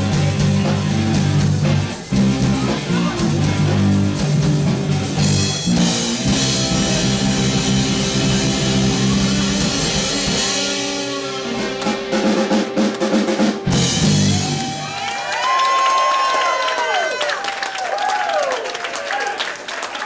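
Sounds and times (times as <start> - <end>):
live rock band playing: 0.0 - 15.4
audience cheering with whoops: 14.0 - 20.0.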